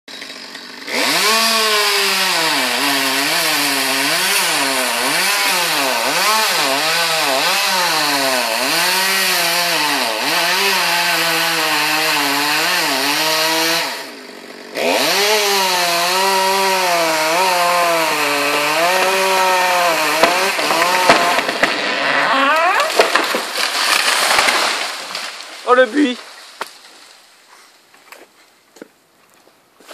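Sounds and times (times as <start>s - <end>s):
chainsaw cutting wood: 0.1s - 27.1s
sharp wood cracks: 16.2s - 27.4s.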